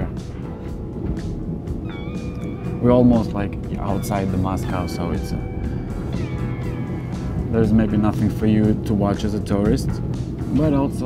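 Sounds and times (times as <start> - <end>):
electric train rumble from inside: 0.0 - 11.0
high held tone: 0.0 - 11.0.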